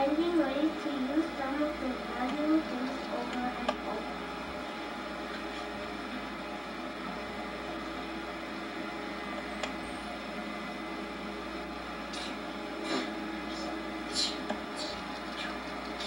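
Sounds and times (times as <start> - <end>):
video recording hiss and hum: 0.0 - 16.0.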